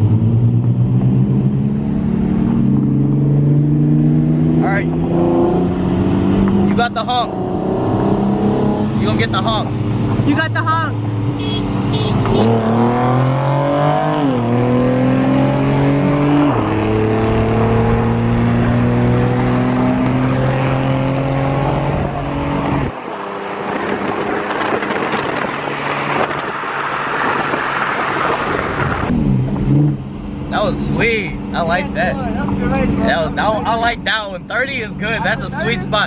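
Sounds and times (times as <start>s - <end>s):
car engine accelerating hard: 0.0s - 36.0s
wind and road rush: 0.0s - 36.0s.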